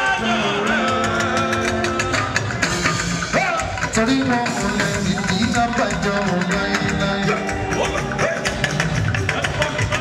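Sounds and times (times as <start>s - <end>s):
guitar: 0.0s - 10.0s
live band music through pa: 0.0s - 10.0s
percussion beat: 0.0s - 10.0s.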